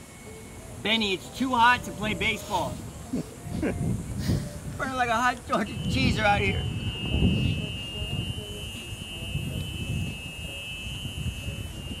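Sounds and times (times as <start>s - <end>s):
golf cart warning buzzer: 0.0s - 2.6s, 5.6s - 12.0s
wind rumble on microphone: 1.7s - 12.0s.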